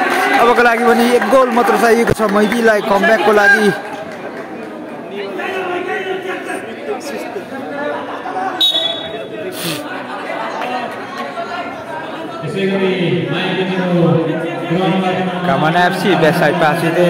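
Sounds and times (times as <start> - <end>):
voices chattering in a hall: 0.0 - 17.0
shrill whistle blast: 8.6 - 9.2.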